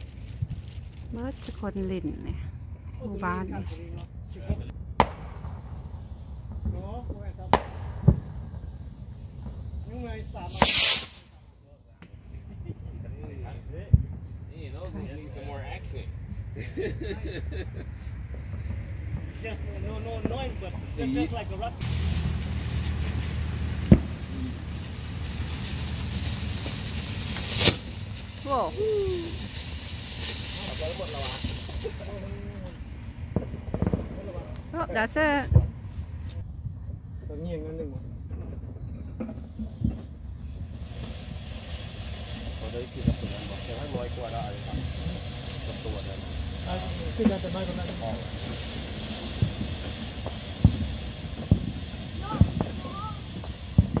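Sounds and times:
firework hiss: 0.0 - 2.2, 2.9 - 17.6, 19.4 - 36.5, 39.3 - 54.0
fireworks bangs: 0.0 - 16.5, 18.3 - 36.2, 38.1 - 54.0.

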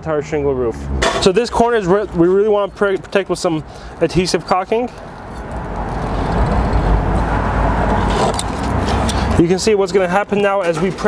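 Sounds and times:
low rumbling noise: 5.0 - 9.4.

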